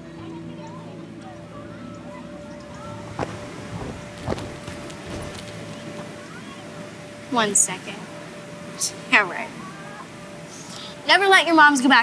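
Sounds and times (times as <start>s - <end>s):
feet landing on inflatable floor: 3.1s - 5.6s.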